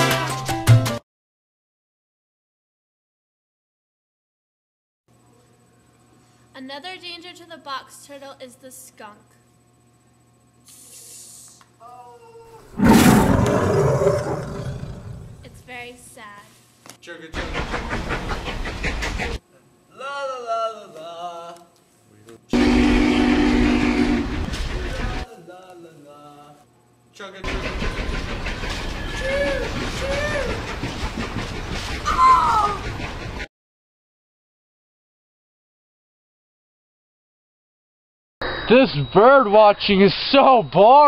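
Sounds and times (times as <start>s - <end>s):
rough animal-like roar: 12.7s - 15.6s
steam hiss: 17.4s - 19.4s, 27.5s - 32.1s
steam train chugging: 17.4s - 19.4s, 22.6s - 25.3s, 27.4s - 33.5s
train whistle toots: 22.5s - 24.5s.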